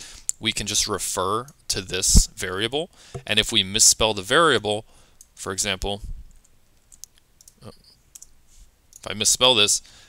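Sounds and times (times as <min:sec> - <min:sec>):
keyboard and mouse clicks: 0:06.4 - 0:08.3.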